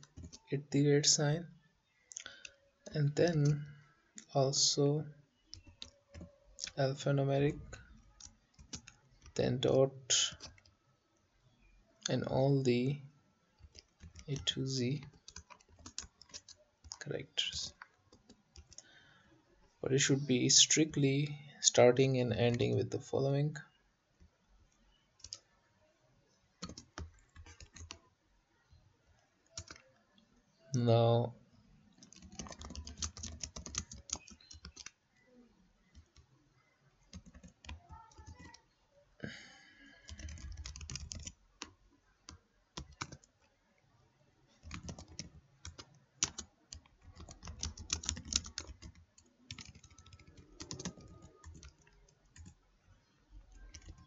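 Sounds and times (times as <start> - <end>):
computer keyboard clicks: 0.0 - 0.4, 5.5 - 6.8, 8.2 - 9.4, 10.3 - 10.7, 13.6 - 17.0, 17.7 - 18.9, 25.2 - 25.4, 26.6 - 28.0, 29.5 - 29.8, 31.9 - 35.0, 37.1 - 38.6, 40.0 - 41.7, 42.8 - 43.3, 44.6 - 52.6, 53.5 - 54.0.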